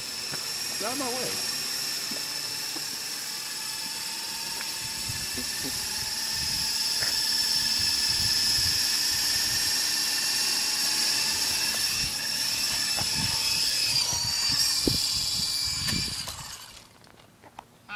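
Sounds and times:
toy helicopter motor whining: 0.0 - 17.1.

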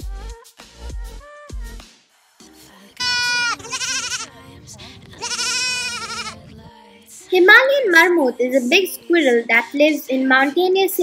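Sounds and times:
goat kid bleating: 3.0 - 4.4, 5.2 - 6.4.

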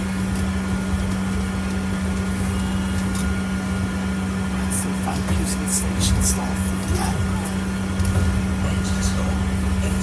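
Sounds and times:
bus interior hum: 0.0 - 10.0
road and running gear rumble: 0.0 - 10.0.

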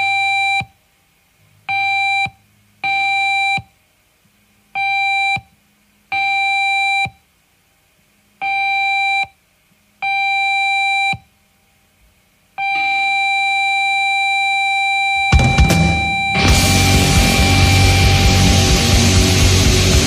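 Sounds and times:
electronic beep: 12.6 - 19.0.

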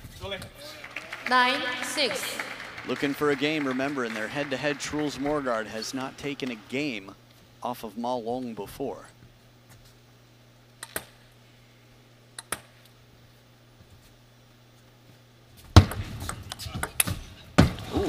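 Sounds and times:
hall hum: 0.6 - 8.6
table tennis ball bouncing: 15.8 - 17.2.

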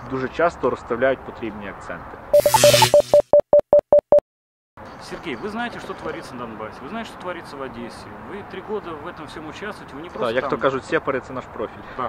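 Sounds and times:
short electronic beeps: 2.4 - 4.2.

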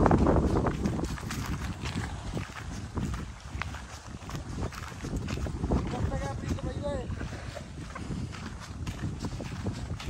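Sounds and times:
footsteps on dirt path: 0.0 - 10.0
wind buffeting microphone: 0.0 - 10.0.

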